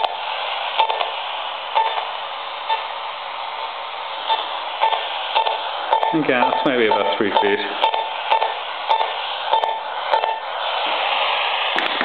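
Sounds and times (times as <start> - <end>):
radio static hiss: 0.0 - 12.0
radio interference pulses: 4.2 - 12.0.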